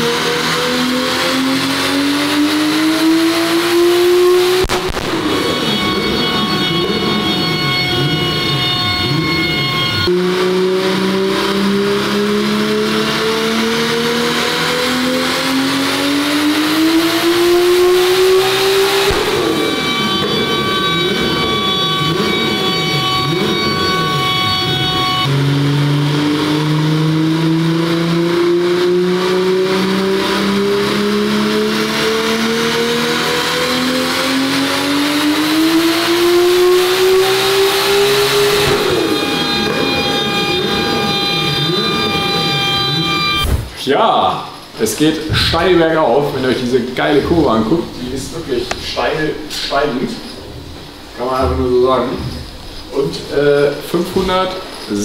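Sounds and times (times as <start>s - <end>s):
turbocharged engine revving: 0.0s - 55.0s.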